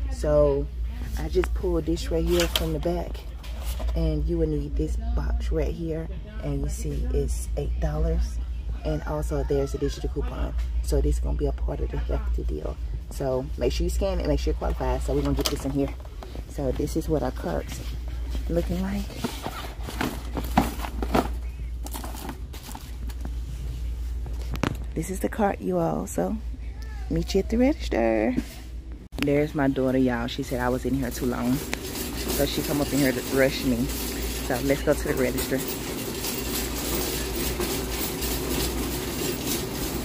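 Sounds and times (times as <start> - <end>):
steady low hum: 0.0 - 40.0
shopping cart rattling: 1.2 - 5.0, 8.9 - 23.5, 29.4 - 40.0
boxes knocking in wire cart: 19.1 - 22.7, 31.4 - 40.0.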